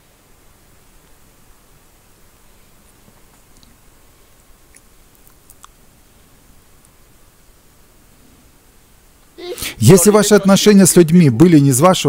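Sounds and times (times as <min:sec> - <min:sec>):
background hiss: 0:00.0 - 0:12.0
man speaking: 0:09.4 - 0:12.0.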